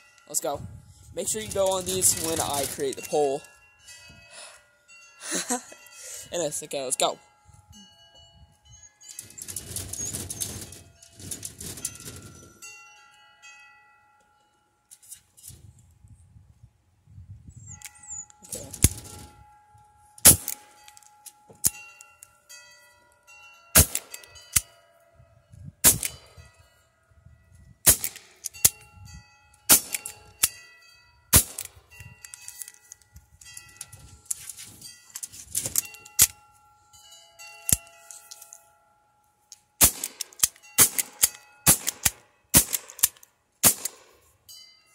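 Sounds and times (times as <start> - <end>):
metal wind chimes ringing: 0.0 - 16.4, 17.2 - 42.5, 44.2 - 44.9
air pistol shots: 20.2 - 20.7, 23.8 - 24.2, 25.8 - 26.3, 27.8 - 28.4, 29.7 - 30.2, 31.4 - 31.7, 39.8 - 44.2.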